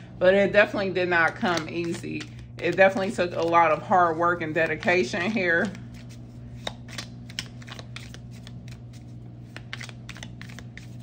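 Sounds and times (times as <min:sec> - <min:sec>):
cards being shuffled: 0:01.2 - 0:11.0.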